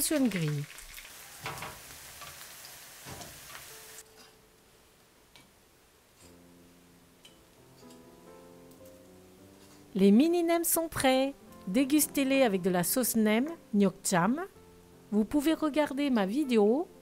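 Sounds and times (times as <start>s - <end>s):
food sizzling in frying oil: 0.0s - 4.0s
soft background music: 3.0s - 17.0s.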